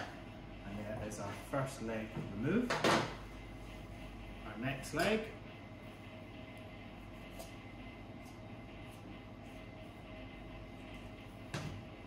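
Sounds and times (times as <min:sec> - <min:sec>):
kitchen equipment hum: 0:00.0 - 0:12.0.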